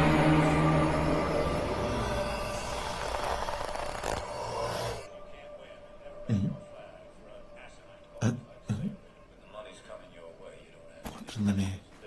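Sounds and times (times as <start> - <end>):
eerie horror film score: 0.0 - 9.2.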